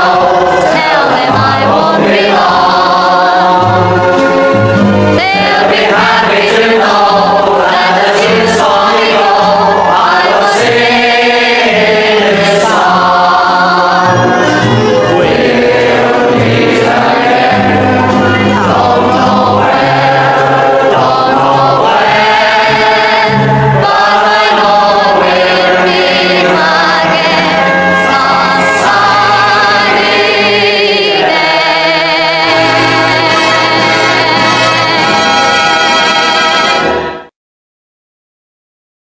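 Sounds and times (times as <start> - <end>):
choir singing: 0.0 - 37.3
low bass notes: 14.0 - 22.5.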